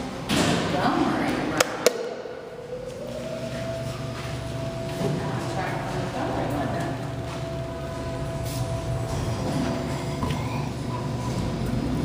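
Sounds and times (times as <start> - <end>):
elevator machinery whine: 2.4 - 12.0.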